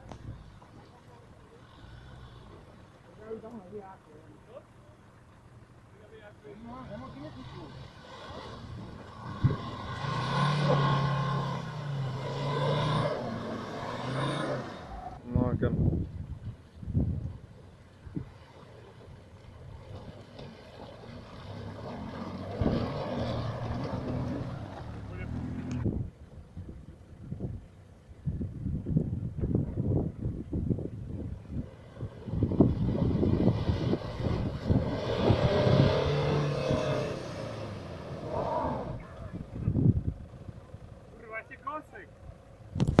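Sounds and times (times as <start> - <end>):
off-road engines revving: 0.0 - 15.7, 17.0 - 26.1, 30.9 - 43.0
tyres splashing through mud: 6.9 - 15.2, 17.5 - 26.0, 31.4 - 39.9.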